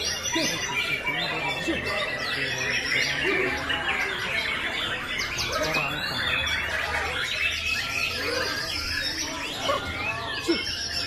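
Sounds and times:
songbirds singing: 0.0s - 11.0s.

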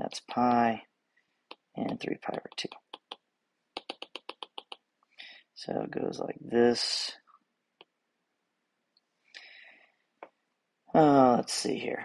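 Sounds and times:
stylus tapping on tablet screen: 1.5s - 4.9s.

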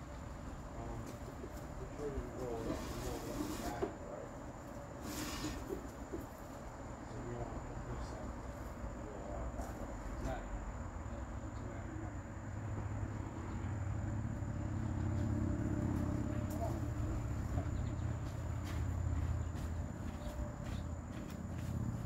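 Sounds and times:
engine-driven blower droning: 11.6s - 22.0s.

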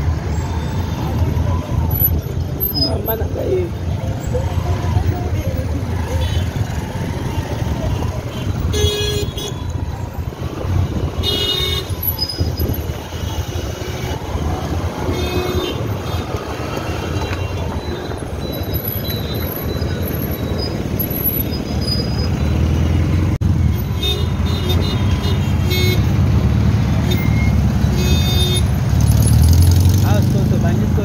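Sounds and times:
city traffic rumble: 0.0s - 31.0s
vehicle horn toots: 11.2s - 12.1s.

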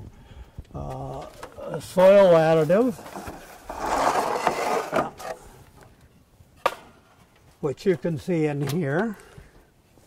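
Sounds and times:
wood scraping against wood: 1.2s - 5.5s.

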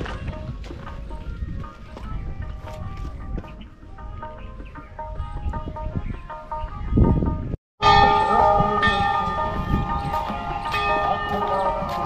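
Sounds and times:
metal bells ringing: 7.8s - 12.0s.

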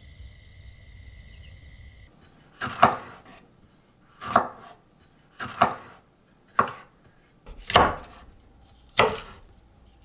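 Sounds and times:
knife slicing on wooden board: 7.5s - 9.4s.

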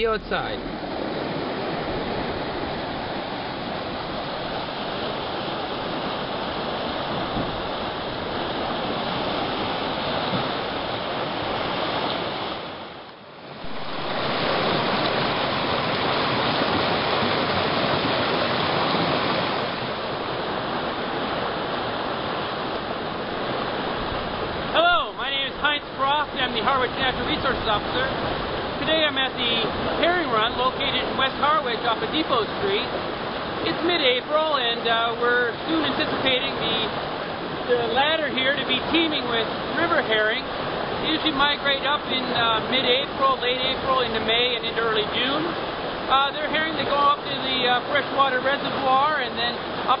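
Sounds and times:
water rushing down concrete flume: 13.6s - 50.0s.

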